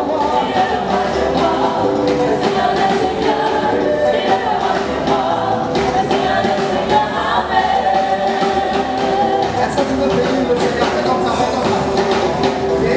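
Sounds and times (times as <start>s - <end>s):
band with drum kit: 0.0s - 12.9s
choir singing in harmony: 0.0s - 12.9s.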